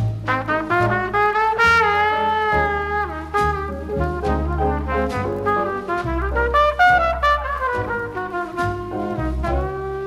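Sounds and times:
jazz trumpet with band: 0.0s - 10.0s.

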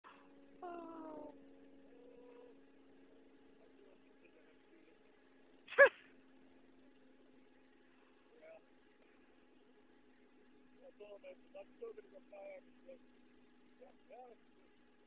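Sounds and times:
faint steady hum: 0.1s - 15.0s.

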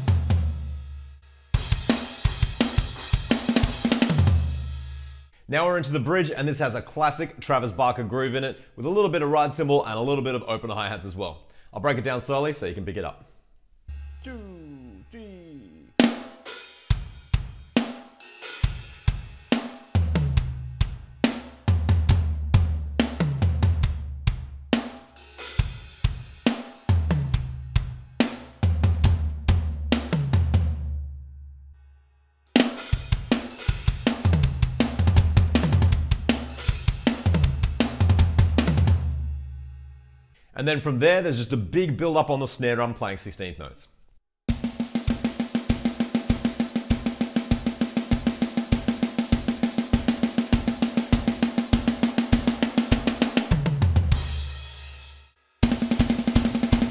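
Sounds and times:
electronic drum kit groove: 0.0s - 5.2s, 13.9s - 30.8s, 32.6s - 39.1s, 44.5s - 56.9s.

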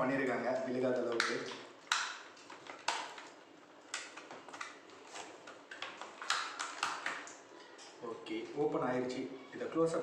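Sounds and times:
plastic container crackling and clicking: 5.7s - 7.4s.

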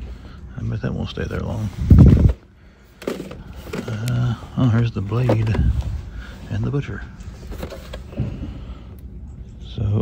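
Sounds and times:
low background hum: 0.0s - 10.0s
packaging knocks and rustles: 3.0s - 5.8s.

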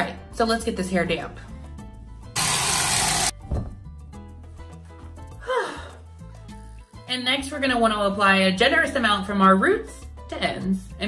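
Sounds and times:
background music: 0.0s - 11.0s
person sighing: 5.4s - 6.0s.

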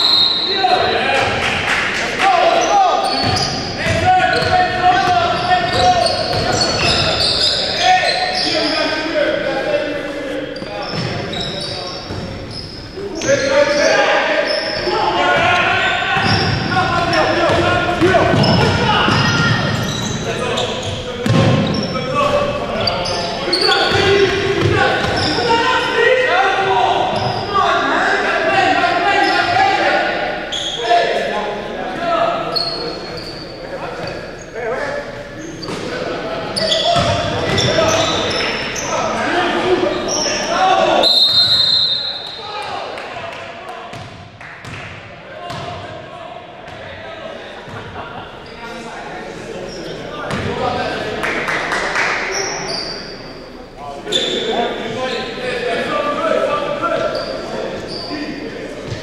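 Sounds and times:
players calling out: 0.0s - 59.0s.

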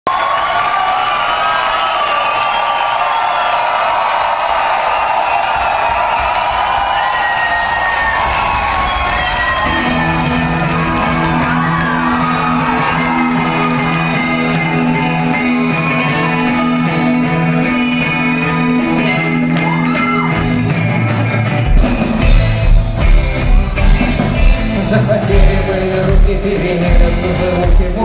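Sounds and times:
crowd cheering and whistling: 0.0s - 26.2s
rock band playing: 8.0s - 28.0s.

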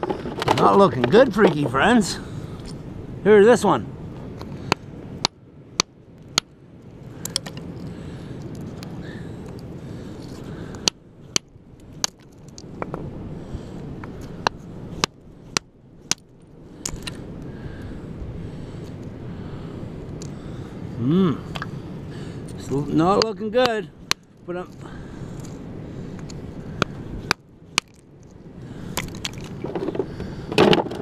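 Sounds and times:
low background noise: 0.0s - 31.0s.

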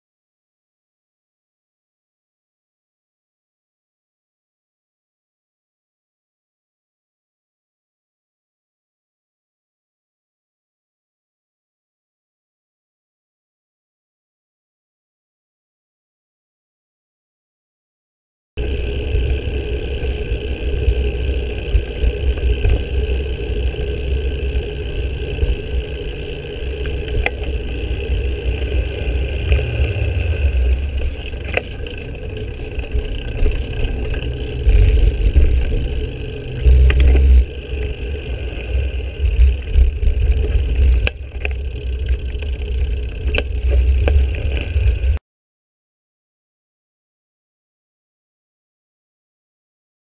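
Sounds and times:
road rumble: 18.6s - 45.2s
wind buffeting: 18.6s - 45.2s.

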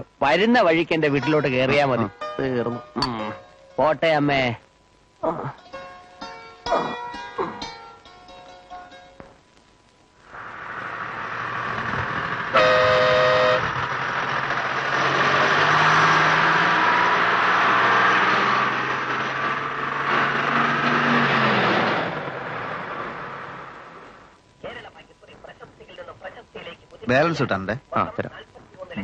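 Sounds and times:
street traffic: 10.2s - 27.3s
bus engine: 10.3s - 24.4s
bus horn: 12.5s - 13.8s.

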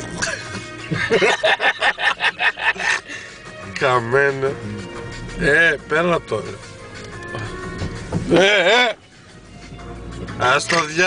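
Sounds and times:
person laughing hard: 0.8s - 3.1s.

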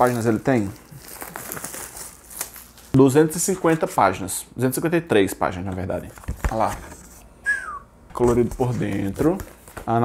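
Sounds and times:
book pages flipping: 0.0s - 3.9s, 8.2s - 10.0s.

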